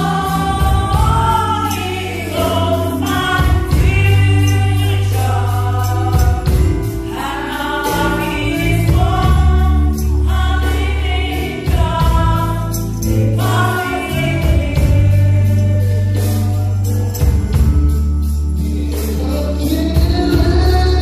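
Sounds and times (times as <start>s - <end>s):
held bass notes: 0.0s - 21.0s
ticking high percussion: 0.0s - 21.0s
women singing gospel: 0.0s - 21.0s.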